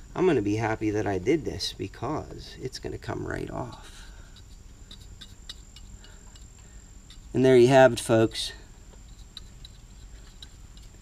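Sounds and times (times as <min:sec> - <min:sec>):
small brush ticks and scrapes: 0:02.7 - 0:11.0.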